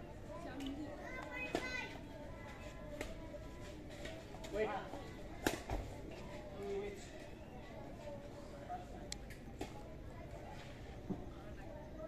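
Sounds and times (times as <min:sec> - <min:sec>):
chattering voices: 0:00.0 - 0:12.0.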